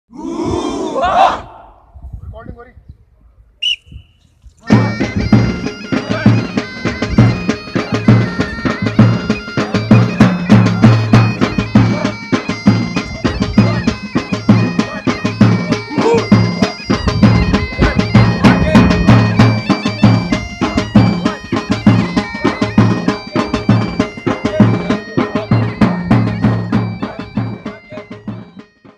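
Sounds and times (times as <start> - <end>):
bagpipes playing a tune: 4.7 - 28.9
steady drum beat: 4.7 - 28.9.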